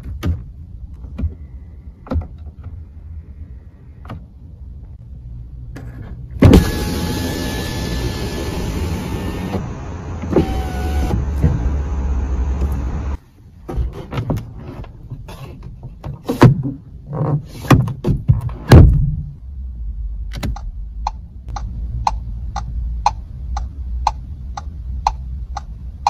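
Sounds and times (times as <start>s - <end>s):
window motor thump: 6.4s - 13.2s
window motor whine: 6.4s - 13.2s.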